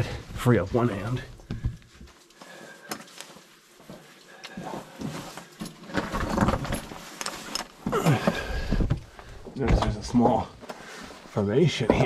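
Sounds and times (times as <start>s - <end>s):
scraping and rustling: 0.4s - 9.2s.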